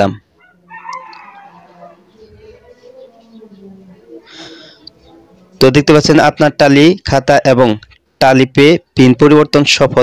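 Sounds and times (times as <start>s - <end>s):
man speaking: 5.6s - 10.0s.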